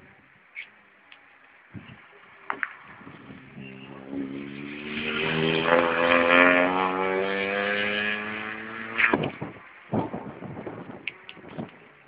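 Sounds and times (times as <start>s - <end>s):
rally car passing at speed: 2.6s - 9.6s.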